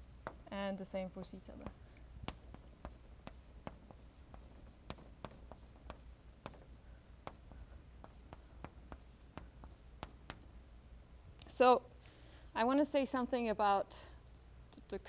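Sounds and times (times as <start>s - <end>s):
chalk tapping and scratching: 1.2s - 10.5s.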